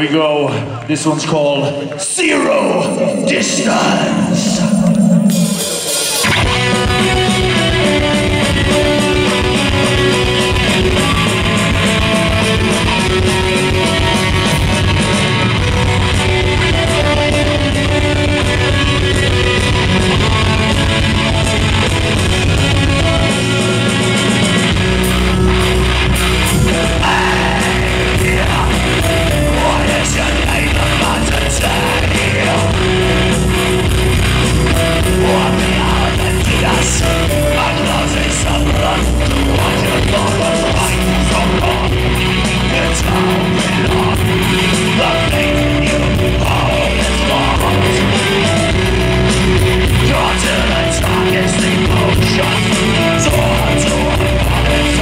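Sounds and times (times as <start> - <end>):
live metal band playing: 0.9 - 55.0.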